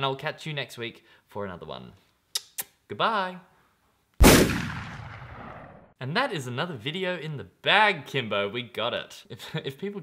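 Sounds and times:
loud boom: 4.2s - 5.9s.

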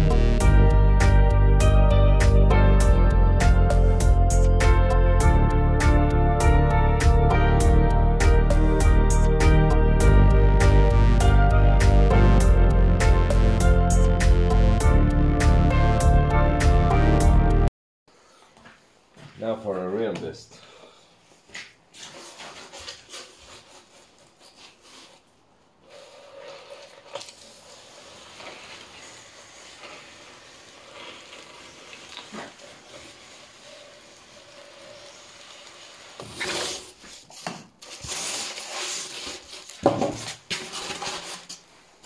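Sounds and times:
foam rubbing over wooden table: 22.2s - 41.5s.

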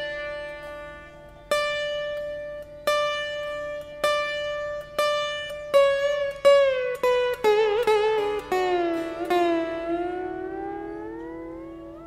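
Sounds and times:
plucked slide note bending: 0.0s - 12.0s.

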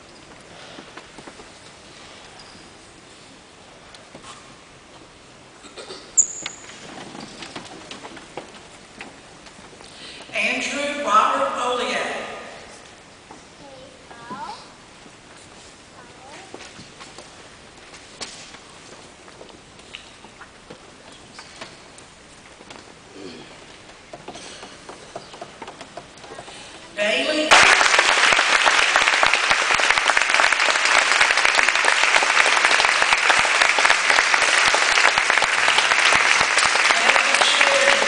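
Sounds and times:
audience clicks and rustles: 0.0s - 10.4s, 14.3s - 38.0s.

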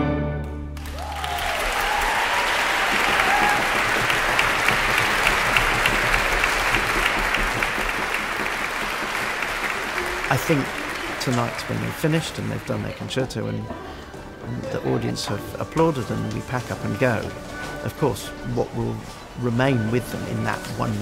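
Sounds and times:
audience applause: 0.8s - 13.6s.

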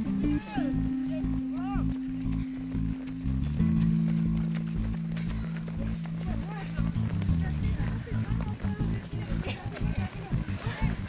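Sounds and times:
music with steady bass notes: 0.0s - 11.0s
runners' footsteps on asphalt: 0.0s - 11.0s.

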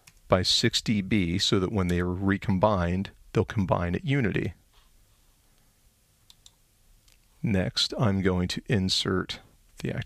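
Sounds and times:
faint mouse clicks: 5.5s - 7.3s.

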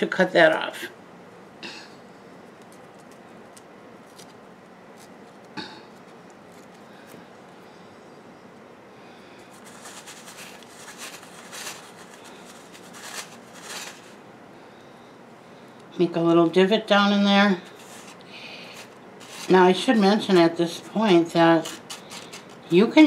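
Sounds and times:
fingers crunching in perlite: 2.5s - 7.2s.

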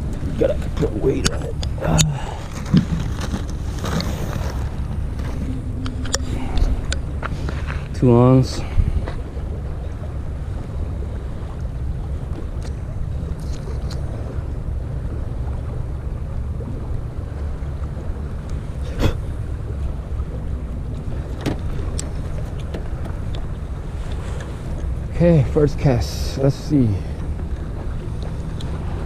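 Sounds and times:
choppy water: 0.0s - 29.0s
wind buffeting microphone: 0.0s - 29.0s.

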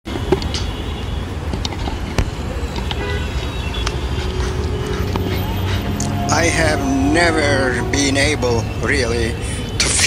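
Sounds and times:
low traffic rumble: 0.1s - 10.0s.

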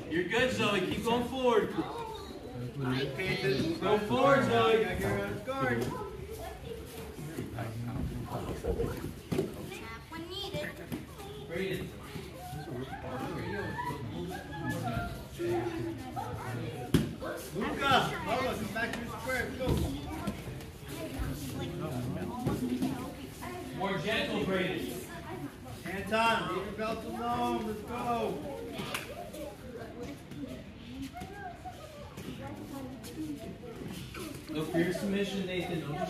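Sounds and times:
background talk: 0.0s - 36.0s
children's voices: 1.7s - 3.9s, 5.8s - 7.6s, 8.3s - 18.7s, 24.9s - 25.9s, 27.4s - 36.0s.

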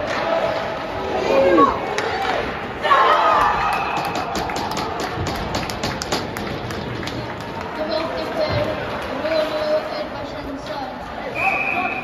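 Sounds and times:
hockey sticks and puck clacking: 0.0s - 2.6s, 3.4s - 10.8s.

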